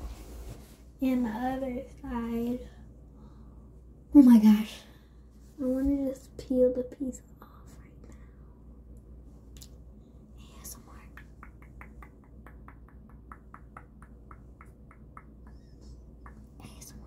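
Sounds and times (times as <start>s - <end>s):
soft rustles: 0.0s - 1.2s
fingertips tapping on face mask: 11.0s - 17.0s.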